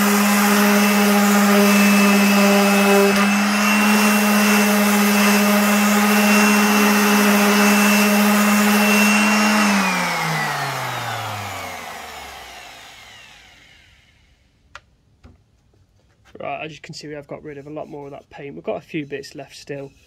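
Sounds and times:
orbital sander on wood: 0.0s - 14.1s.

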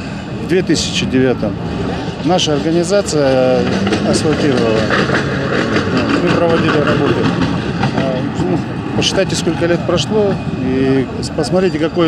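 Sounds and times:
man talking: 0.0s - 1.6s, 2.2s - 5.0s, 6.1s - 7.4s, 8.0s - 12.0s
road traffic: 0.0s - 12.0s.

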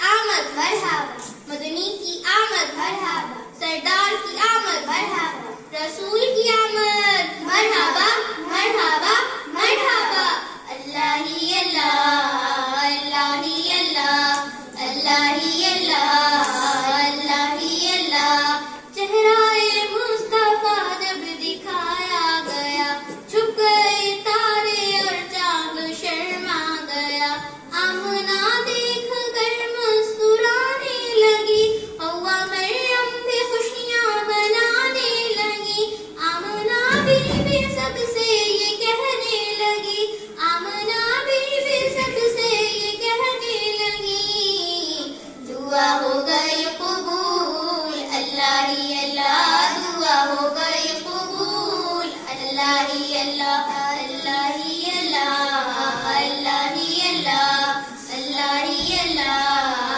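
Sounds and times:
girl singing devotional song: 0.0s - 59.9s
low thump: 36.8s - 38.1s.

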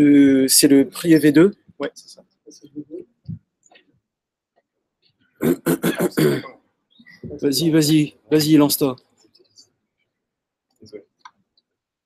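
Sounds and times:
person coughing: 5.4s - 6.6s.

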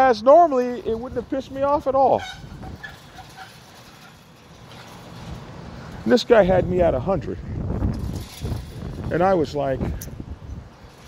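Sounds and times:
outdoor background hiss: 0.0s - 11.0s
wind rumble on microphone: 0.8s - 3.3s, 6.3s - 11.0s.

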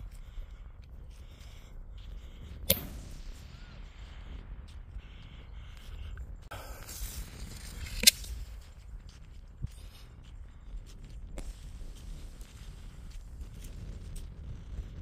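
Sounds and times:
firework hissing: 2.5s - 5.0s
fireworks bangs: 2.6s - 5.4s.

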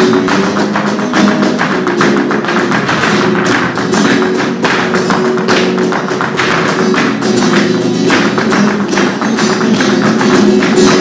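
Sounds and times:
dancer's footwork strikes: 0.0s - 11.0s
flamenco guitar: 0.0s - 11.0s
hand claps: 0.0s - 11.0s.

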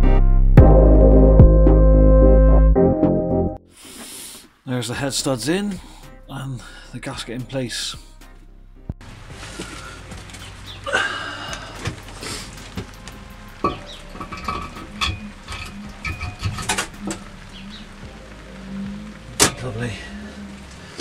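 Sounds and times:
metal clicks and knocks: 12.8s - 17.2s.

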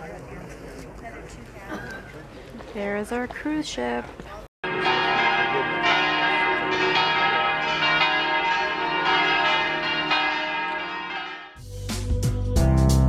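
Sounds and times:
church bells ringing: 4.6s - 11.6s.

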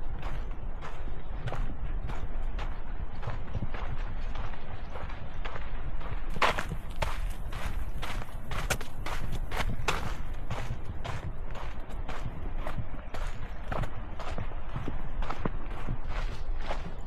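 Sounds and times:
footsteps on sandy dirt trail: 0.0s - 17.0s.

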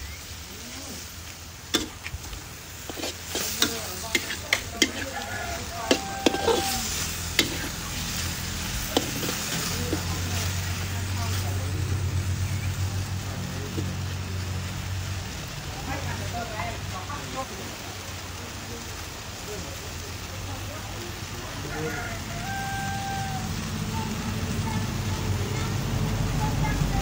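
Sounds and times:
meat sizzling in a wok: 0.0s - 27.0s
metal spatula clacking on pan: 1.7s - 2.2s, 2.9s - 10.2s.

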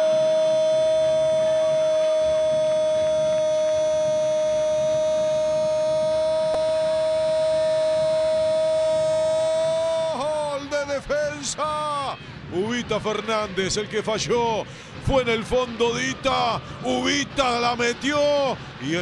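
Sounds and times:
excited speech: 9.6s - 19.0s.

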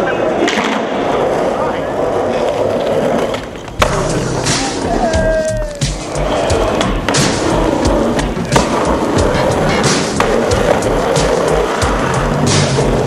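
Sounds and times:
skateboard clacks: 0.0s - 13.0s
skateboard wheels rolling on asphalt: 0.0s - 13.0s
background music with beat: 3.8s - 13.0s.

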